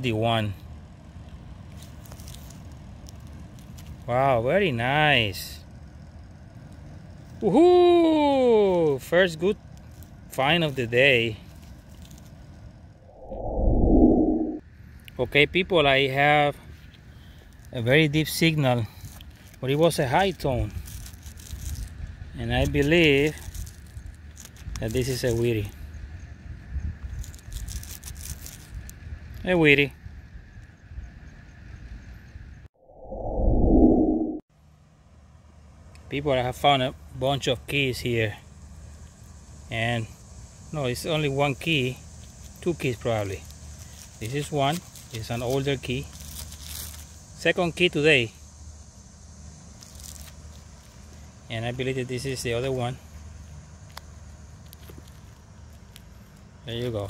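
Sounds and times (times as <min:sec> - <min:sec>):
low outdoor rumble: 0:00.0 - 0:57.0
low wind rumble on microphone: 0:13.0 - 0:14.6, 0:25.8 - 0:34.4.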